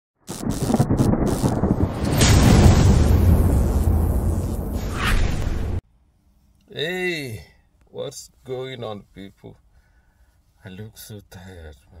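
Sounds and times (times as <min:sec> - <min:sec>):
rain hiss: 0:00.3 - 0:05.8
low thunder rumble: 0:00.4 - 0:05.8.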